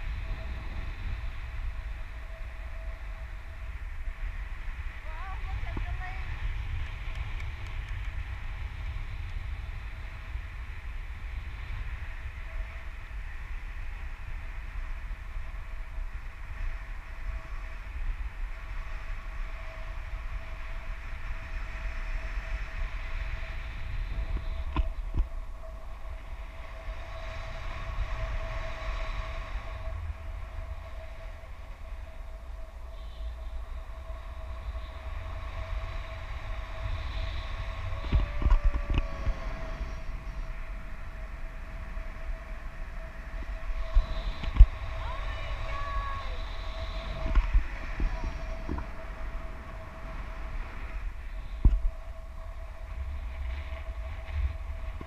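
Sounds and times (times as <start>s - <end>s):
faint steady whistle: 0.0s - 5.3s, 9.9s - 55.0s
wind buffeting microphone: 0.0s - 55.0s.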